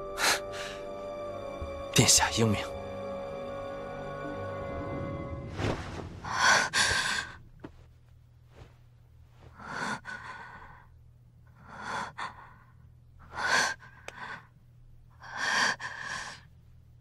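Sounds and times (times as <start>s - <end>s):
woman breathing heavily: 0.0s - 0.9s, 6.2s - 7.5s, 9.4s - 16.6s
faint low hum: 5.5s - 17.0s.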